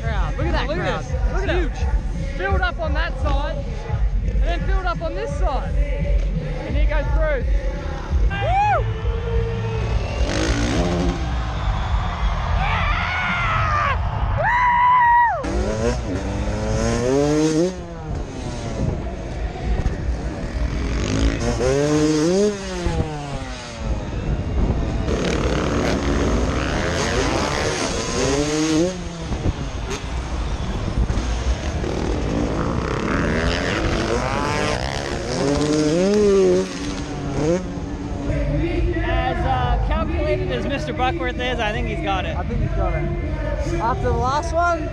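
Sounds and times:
dirt bikes revving: 0.0 - 44.9
steady low rumble: 17.8 - 21.7.

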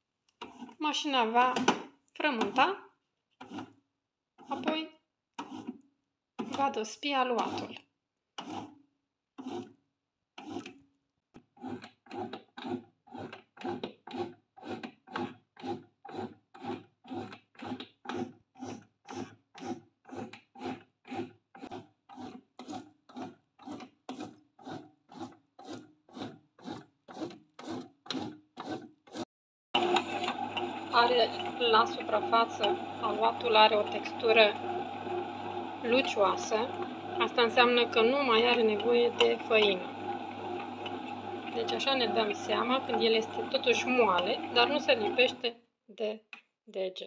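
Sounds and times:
bread maker kneading pulses: 0.4 - 2.8, 3.4 - 3.8, 4.4 - 5.8, 6.4 - 7.8, 8.4 - 8.8, 9.4 - 9.8, 10.4 - 10.8, 11.4 - 45.5.

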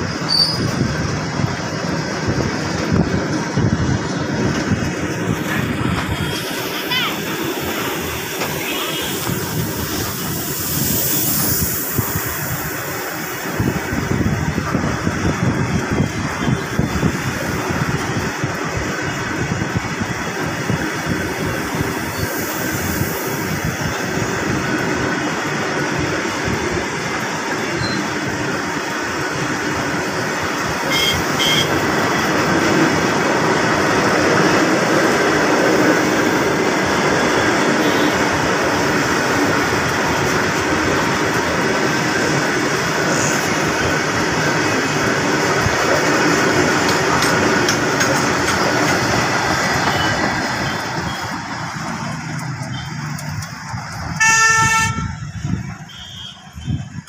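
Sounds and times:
freight train wheels rumbling: 0.0 - 57.0
train horn toot: 30.9 - 31.8, 37.8 - 38.2, 54.2 - 56.8.

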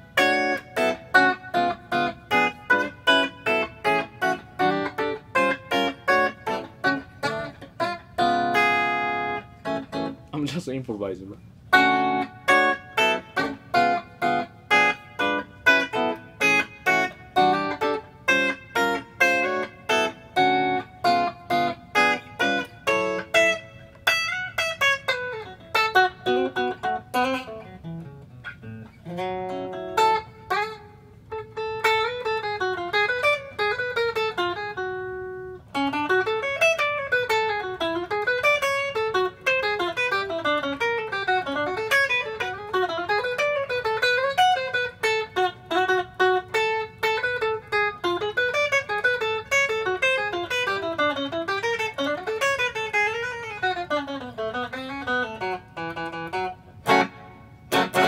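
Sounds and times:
electric guitar solo: 0.0 - 58.0.

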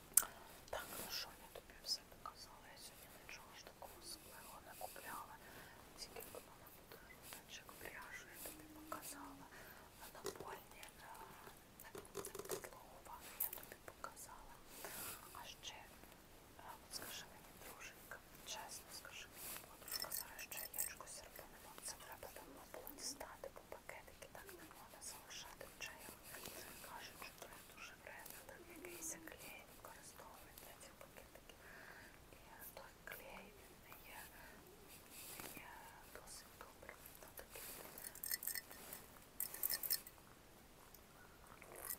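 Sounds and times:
woman whispering: 0.1 - 16.0, 16.6 - 38.3.

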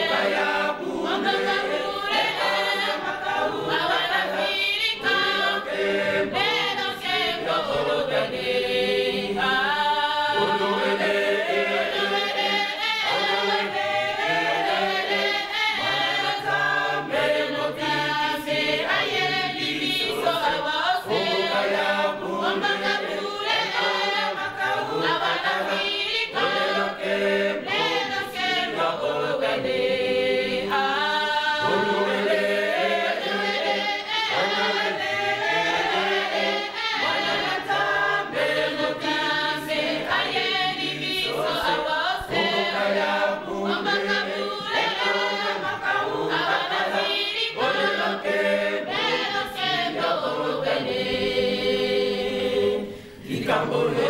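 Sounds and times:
church choir singing: 0.0 - 54.0.

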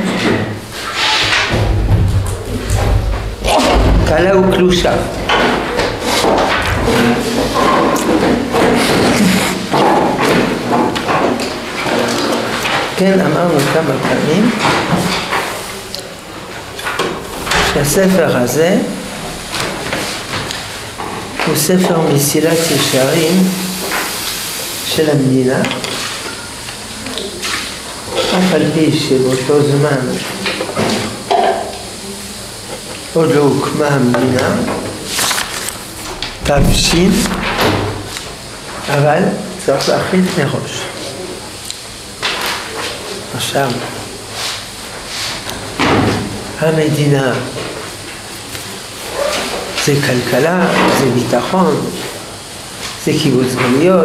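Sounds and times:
steady background hiss: 0.0 - 54.0
man blowing his nose: 8.8 - 9.7.

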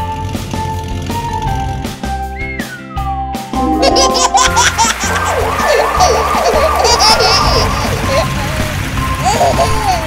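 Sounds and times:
cartoon ambulance siren: 3.8 - 9.0.

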